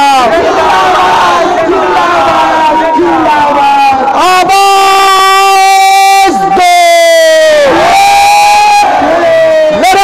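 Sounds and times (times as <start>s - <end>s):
man calling over loudspeaker: 0.0s - 0.4s, 2.2s - 8.7s, 9.4s - 10.0s
crowd shouting: 0.0s - 10.0s.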